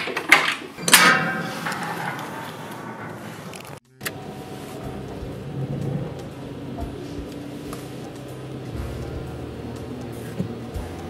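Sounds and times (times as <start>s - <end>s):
car engine idling inside cabin: 4.0s - 11.0s
loud ringing hit: 8.7s - 11.0s.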